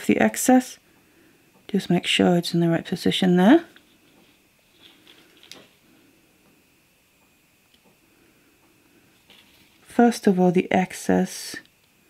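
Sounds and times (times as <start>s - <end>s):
faint handling of wire and cutters: 3.7s - 5.8s.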